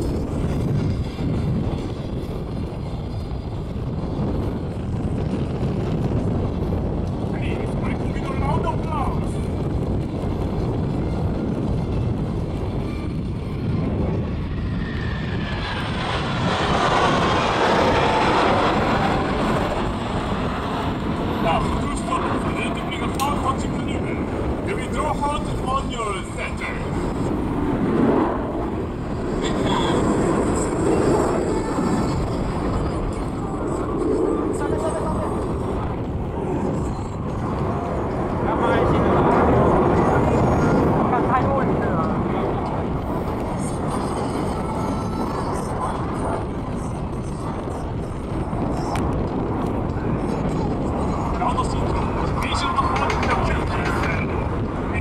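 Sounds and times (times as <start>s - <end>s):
jet noise rushing: 3.9s - 46.4s.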